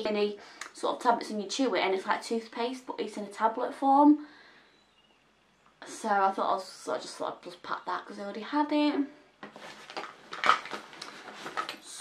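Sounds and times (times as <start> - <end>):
bottles knocking and clinking in bag: 9.5 - 11.8.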